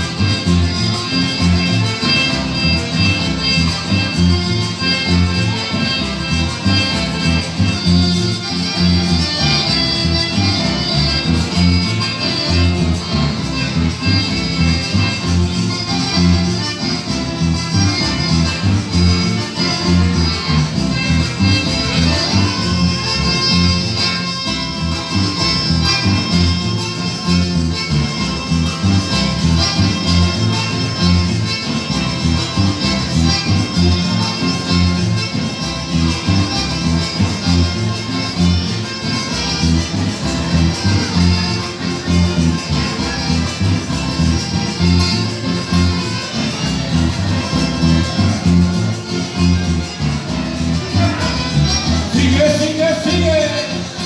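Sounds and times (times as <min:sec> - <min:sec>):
accordion melody: 0:00.0 - 0:54.0
bass line: 0:00.0 - 0:54.0
latin american band music: 0:00.0 - 0:54.0
plucked guitar: 0:00.0 - 0:54.0.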